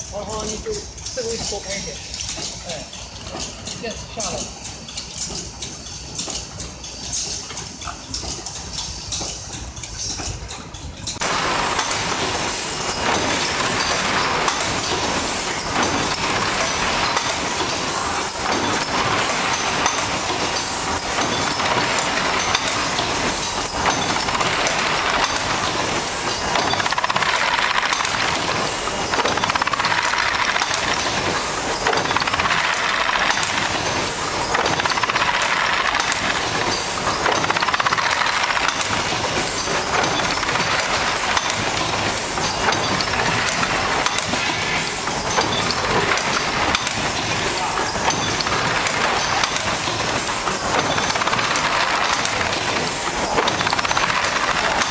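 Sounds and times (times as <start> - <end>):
packaging machine mechanical din: 0.0 - 54.9.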